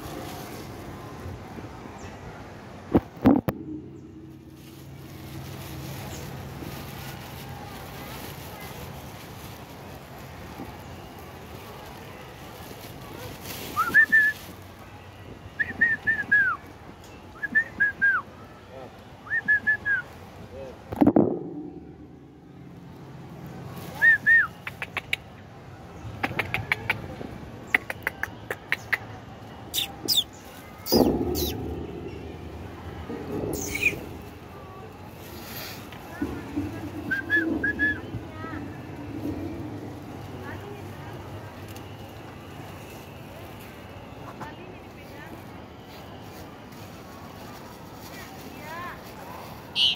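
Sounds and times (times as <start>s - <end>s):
starling singing whistled phrases: 29.7s - 31.6s, 33.4s - 34.3s, 37.0s - 38.2s.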